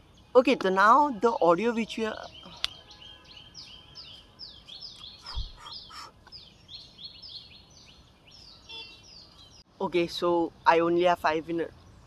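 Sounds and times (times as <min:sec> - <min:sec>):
bird chirping: 0:00.0 - 0:12.0
faint outdoor background noise: 0:00.0 - 0:12.0.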